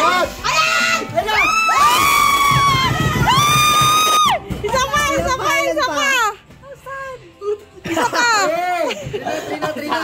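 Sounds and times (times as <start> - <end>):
people shrieking and cheering: 0.0 - 4.7.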